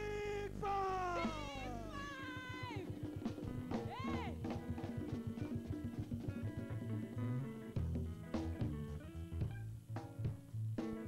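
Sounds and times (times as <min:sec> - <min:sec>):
woman shouting into microphone: 0:00.0 - 0:02.9, 0:03.8 - 0:04.4
band playing fast low beat: 0:00.0 - 0:11.0.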